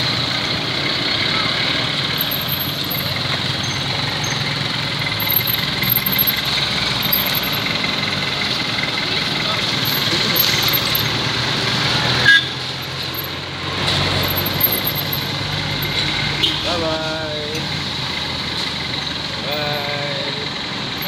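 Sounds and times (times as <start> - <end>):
motorcycle and car engines: 0.0 - 21.0
people's voices: 1.1 - 17.9, 18.9 - 20.8.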